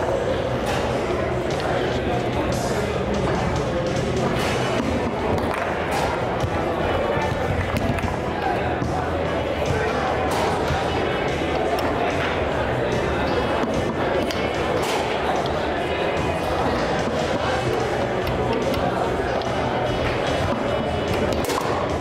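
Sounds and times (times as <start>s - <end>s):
background music: 0.0s - 22.0s
hall chatter: 0.0s - 22.0s.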